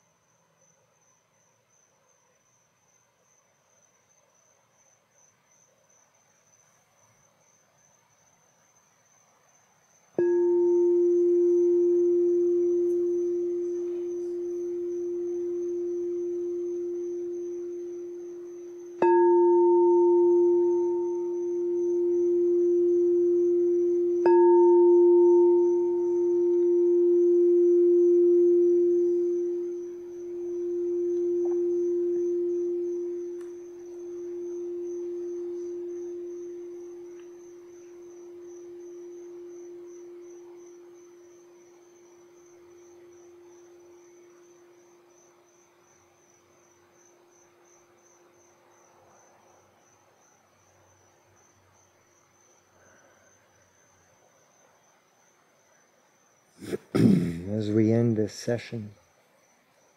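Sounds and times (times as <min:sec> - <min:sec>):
singing bowl ringing: 0:10.2 - 0:45.4.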